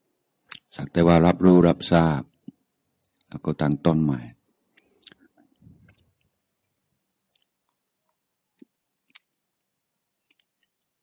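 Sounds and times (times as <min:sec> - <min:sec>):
man speaking into microphone: 0:00.7 - 0:02.4, 0:03.3 - 0:04.4.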